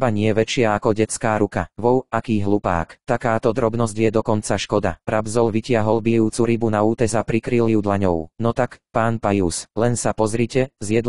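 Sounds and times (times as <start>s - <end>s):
synthetic male voice speaking: 0.0s - 11.0s.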